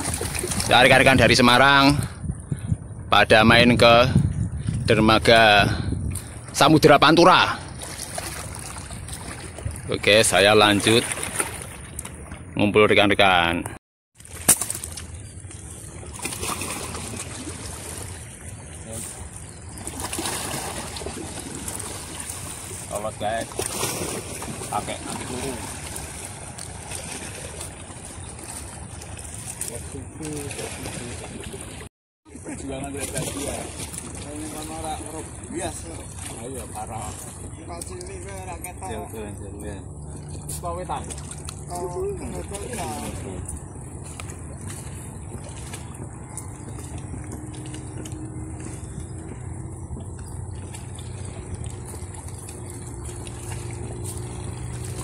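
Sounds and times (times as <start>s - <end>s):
sea water lapping and splashing: 0.0s - 3.0s, 3.8s - 55.0s.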